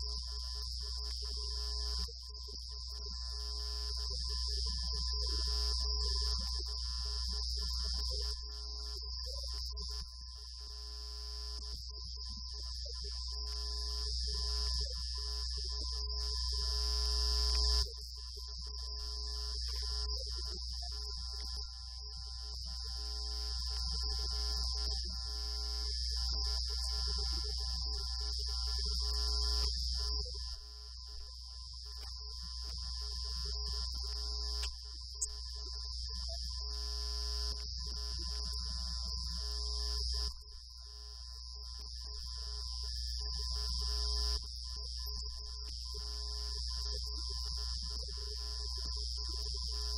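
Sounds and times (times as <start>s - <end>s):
faint steady tones: 0.0s - 49.9s
electrical hum: 10.6s - 49.9s.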